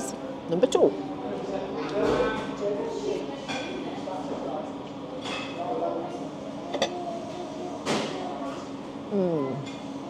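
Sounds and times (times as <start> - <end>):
voices in background: 0.0 - 10.0
tableware clinking: 6.7 - 7.0.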